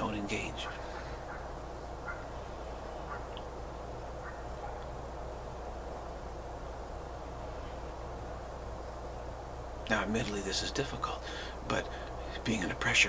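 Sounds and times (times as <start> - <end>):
low electrical hum: 0.0 - 13.0
even hiss: 4.8 - 13.0.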